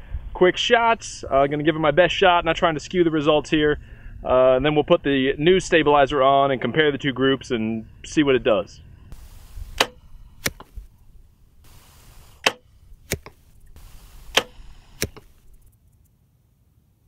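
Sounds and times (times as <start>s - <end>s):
bow release crack: 9.1s - 15.7s
arrow striking foam target: 9.2s - 10.9s, 11.8s - 15.6s.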